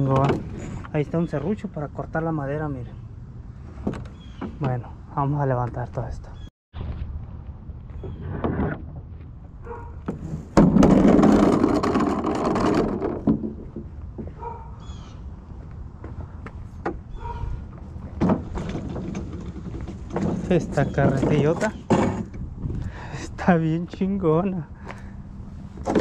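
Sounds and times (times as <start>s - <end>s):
wheelbarrow rattling and scraping: 10.0s - 14.0s, 17.8s - 22.4s, 25.8s - 26.0s
wheelbarrow knocks and clanks: 10.0s - 14.3s, 18.0s - 22.4s.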